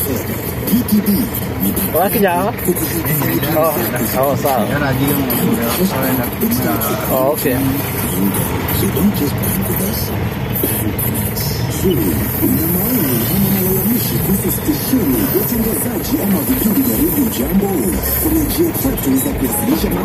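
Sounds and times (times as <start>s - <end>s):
minibus engine idling: 0.0s - 20.0s
voices: 0.0s - 20.0s
music: 14.7s - 20.0s.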